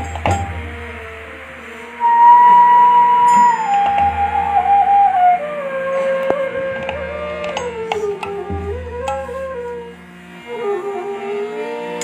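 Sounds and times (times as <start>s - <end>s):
bamboo flute long note: 0.0s - 12.0s
harmonium drone: 0.0s - 12.0s.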